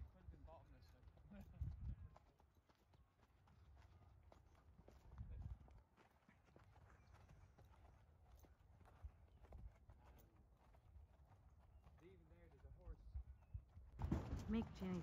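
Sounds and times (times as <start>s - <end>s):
hoofbeats on dirt track: 0.0s - 15.0s.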